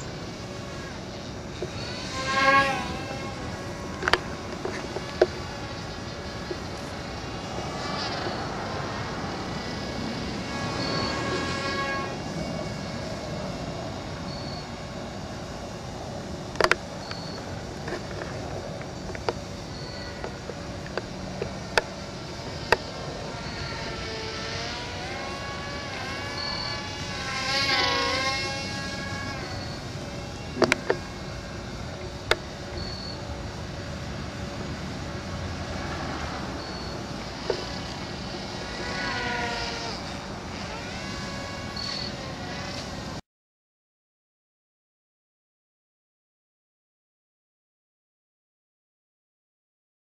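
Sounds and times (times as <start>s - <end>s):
toy plane motor buzzing: 0.0s - 43.2s.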